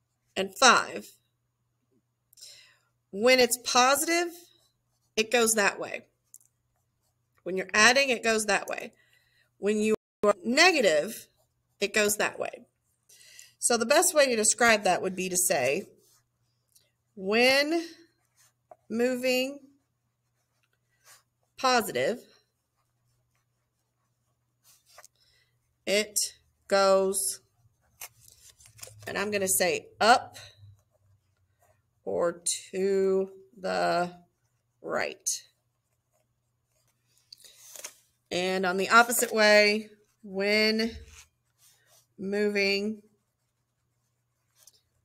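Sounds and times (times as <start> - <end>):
pen scratching on paper: 13.9 - 16.6, 17.2 - 25.1, 34.3 - 37.2, 38.9 - 45.0.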